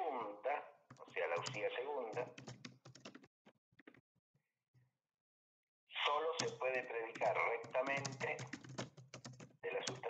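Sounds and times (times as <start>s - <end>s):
person speaking: 0.0s - 2.5s, 5.9s - 8.7s, 9.6s - 10.0s
typing on computer keyboard: 0.9s - 3.9s, 6.4s - 10.0s.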